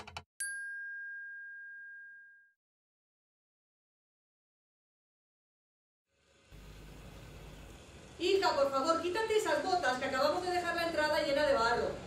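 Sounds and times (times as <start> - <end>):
bright bell-like ding: 0.4 - 2.6.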